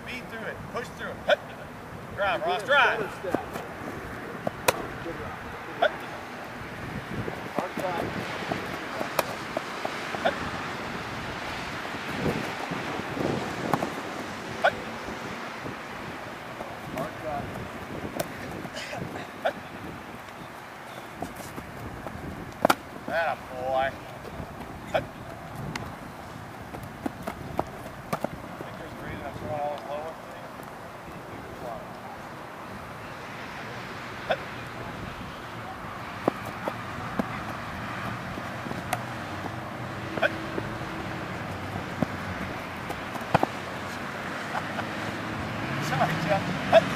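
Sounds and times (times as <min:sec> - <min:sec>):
faint distant voices: 0:23.0 - 0:46.9.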